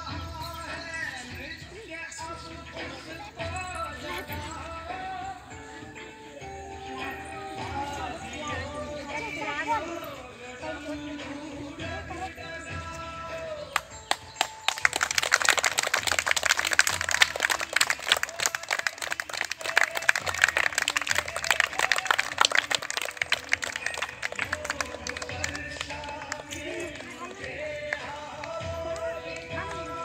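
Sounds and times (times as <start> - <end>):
faint song playing: 0.0 - 30.0
children clapping: 13.7 - 29.9.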